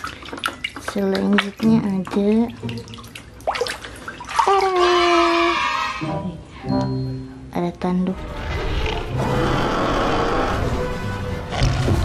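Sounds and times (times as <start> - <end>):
water sloshing in plastic basin: 0.0 - 5.0
held musical tone: 6.0 - 7.9.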